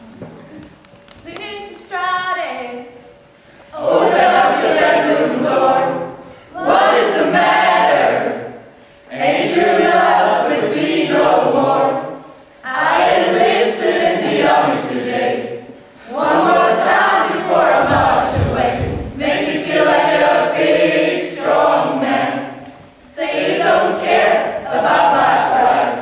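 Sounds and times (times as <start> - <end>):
choir singing: 3.7 - 26.0.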